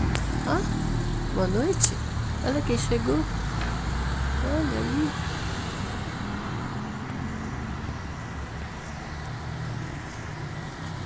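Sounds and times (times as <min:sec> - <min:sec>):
distant road traffic rumble: 0:00.0 - 0:11.0.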